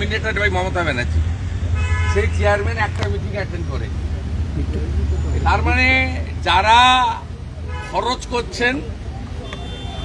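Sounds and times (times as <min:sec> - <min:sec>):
low street rumble: 0:00.0 - 0:10.0
vehicle horn: 0:01.8 - 0:02.4, 0:09.4 - 0:10.0
man talking: 0:02.1 - 0:09.0.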